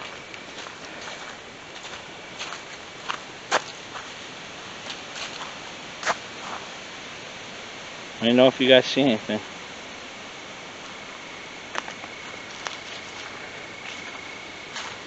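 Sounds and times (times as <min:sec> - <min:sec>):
footsteps on dirt and leaves: 0:00.0 - 0:06.7, 0:10.8 - 0:15.0
steady hiss: 0:00.0 - 0:15.0.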